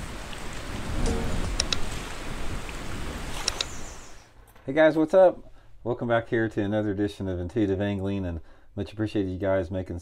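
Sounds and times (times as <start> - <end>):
rushing water: 0.0 - 4.4.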